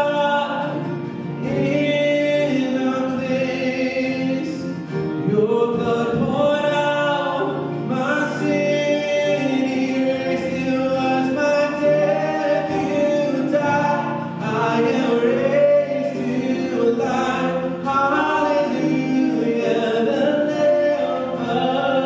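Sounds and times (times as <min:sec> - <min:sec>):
guitars: 0:00.0 - 0:22.0
many voices singing along: 0:00.0 - 0:22.0
piano: 0:00.0 - 0:22.0.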